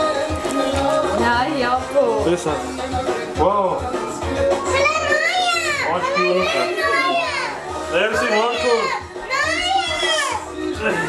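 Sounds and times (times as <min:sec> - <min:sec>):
children shouting and squealing: 0:04.6 - 0:11.0.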